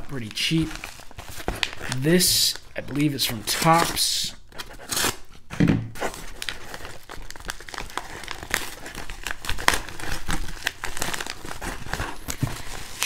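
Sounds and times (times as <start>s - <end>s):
paper mailer tearing and crinkling: 0.0s - 5.2s, 6.0s - 13.0s.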